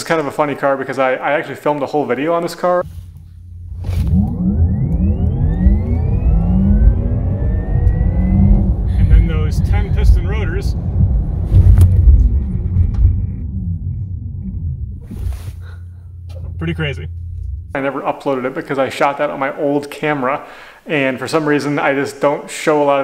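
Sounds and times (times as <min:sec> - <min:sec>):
car road and drivetrain rumble: 0:03.0 - 0:17.8
electric car whine: 0:03.6 - 0:15.0.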